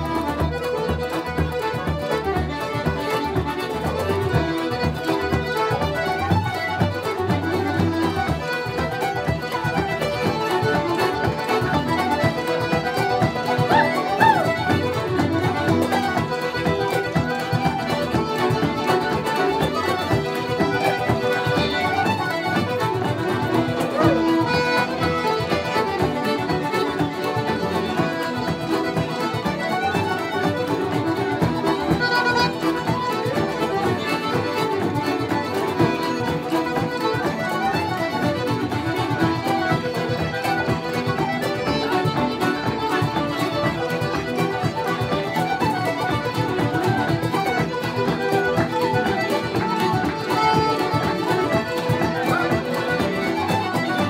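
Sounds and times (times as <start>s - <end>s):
button accordion: 0.0s - 54.0s
fiddles: 0.0s - 54.0s
strummed guitar: 0.0s - 54.0s.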